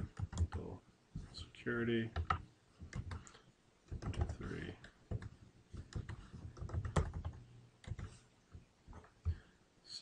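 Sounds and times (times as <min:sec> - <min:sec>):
typing on a keyboard: 0:05.1 - 0:08.2.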